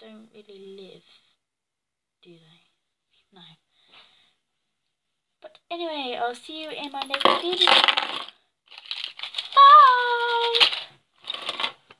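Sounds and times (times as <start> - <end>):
plastic toys clattering on table: 6.8 - 11.9.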